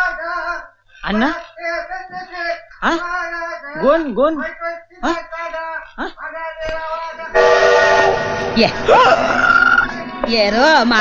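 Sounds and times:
horn chord blast: 0:07.4 - 0:10.2.

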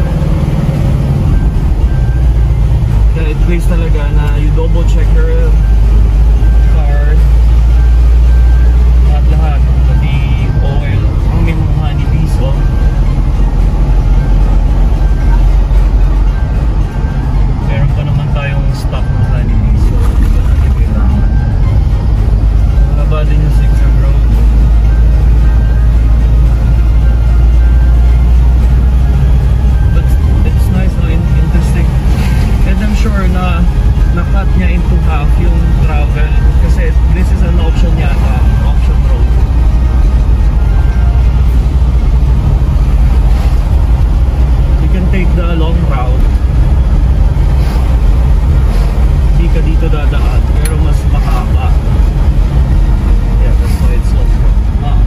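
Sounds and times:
engine and tyre rumble inside car: 0:00.0 - 0:55.0.

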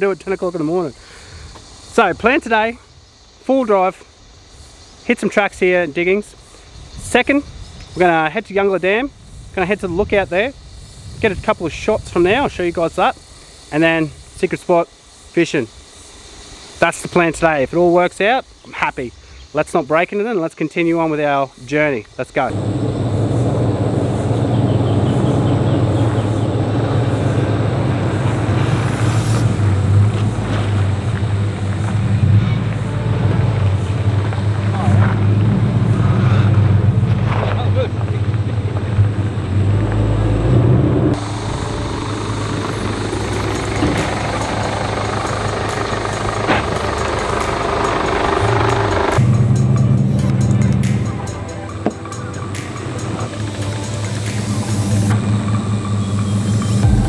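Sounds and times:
engine droning at low speed: 0:22.5 - 0:57.0.

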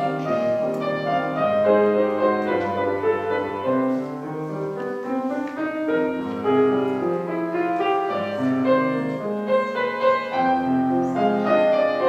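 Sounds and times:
grand piano playing: 0:00.0 - 0:12.0.

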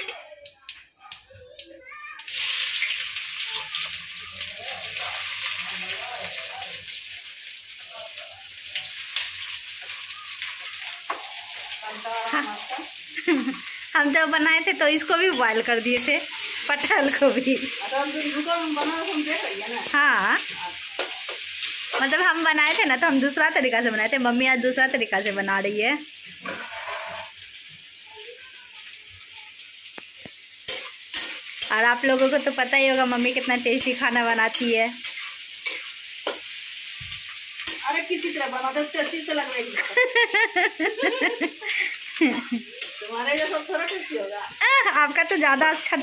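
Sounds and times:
onions sizzling in hot oil: 0:01.9 - 0:46.0.

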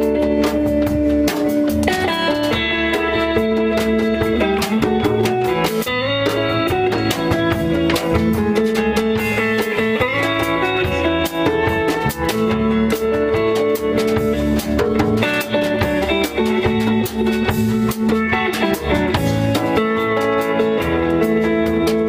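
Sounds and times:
drums: 0:00.0 - 0:22.0
electric guitars: 0:00.0 - 0:22.0.

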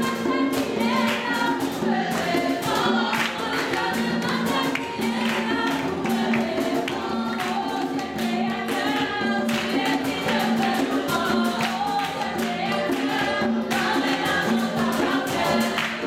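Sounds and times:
group singing gospel song: 0:00.0 - 0:16.0
rhythmic hand clapping: 0:00.0 - 0:16.0.

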